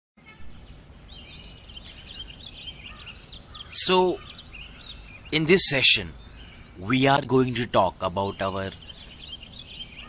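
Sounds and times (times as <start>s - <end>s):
birds chirping: 0.2s - 10.0s.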